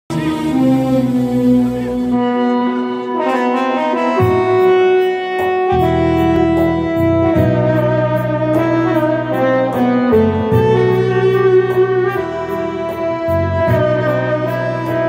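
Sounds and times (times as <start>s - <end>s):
arranger keyboard melody: 0.1s - 15.0s.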